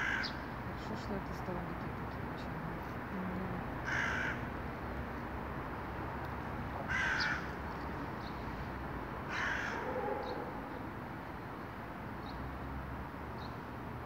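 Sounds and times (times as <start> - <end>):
bird harsh calls: 0.0 - 0.5, 6.9 - 7.6, 9.3 - 10.9
low background noise: 0.0 - 14.0.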